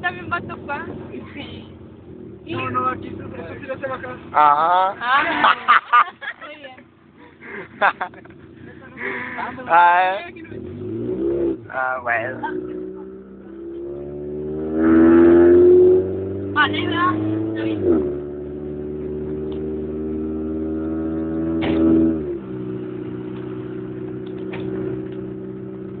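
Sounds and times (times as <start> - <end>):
car engine accelerating: 0.0 - 5.8, 7.0 - 26.0.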